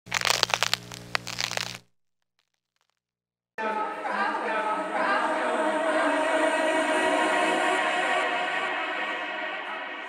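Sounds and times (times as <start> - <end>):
crackles and sharp snaps: 0.0 - 3.0.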